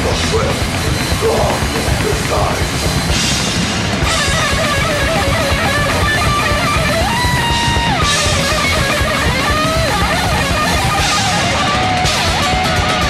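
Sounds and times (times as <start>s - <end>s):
distorted electric guitars: 0.0s - 13.0s
fast drumming: 0.0s - 13.0s
lead guitar bending notes: 0.0s - 13.0s.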